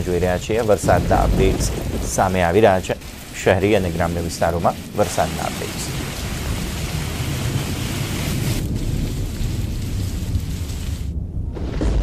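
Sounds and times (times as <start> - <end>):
heavy rain hissing: 0.0 - 11.2
low rumble: 0.0 - 12.0.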